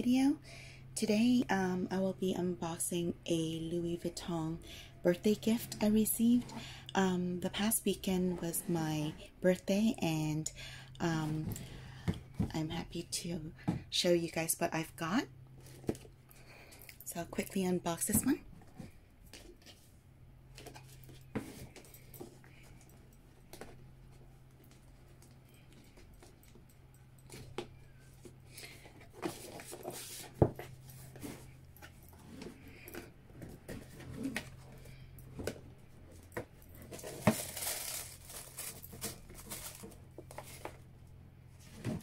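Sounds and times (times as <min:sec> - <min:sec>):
low steady hum: 0:00.0 - 0:42.0
tissue paper rustling: 0:36.8 - 0:40.8.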